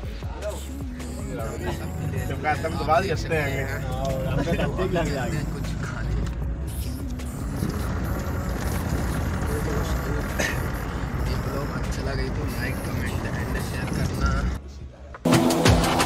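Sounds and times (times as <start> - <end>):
man talking: 0.1 - 6.4, 9.3 - 14.9
car engine rumbling inside cabin: 0.5 - 14.6.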